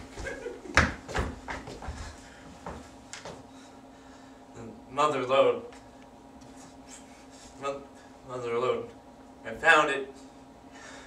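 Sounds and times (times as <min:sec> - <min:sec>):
footsteps on stage floor: 0:00.0 - 0:03.5
faint room hum: 0:00.0 - 0:11.0.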